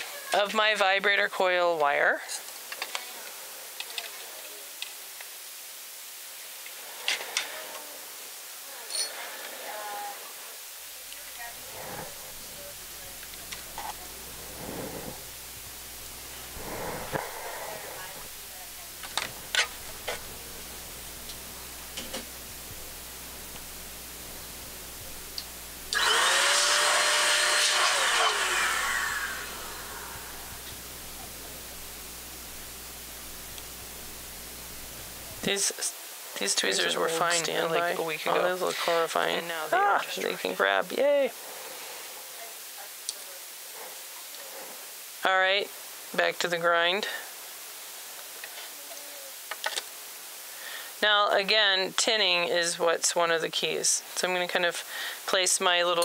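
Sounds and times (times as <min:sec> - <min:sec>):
electric blower motor running: 0:11.5 - 0:35.5.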